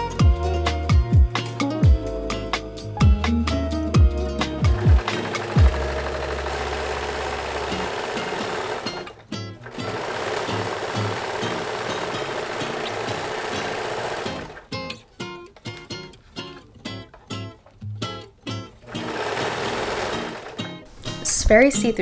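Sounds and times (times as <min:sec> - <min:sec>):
guitar background music: 0:00.0 - 0:22.0
overlock sewing machine running: 0:04.7 - 0:14.7, 0:18.9 - 0:20.8.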